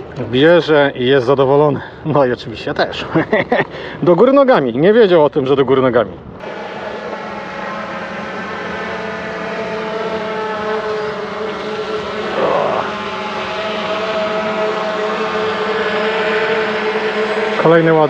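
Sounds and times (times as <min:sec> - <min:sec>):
drone propeller hum: 0:06.3 - 0:18.0.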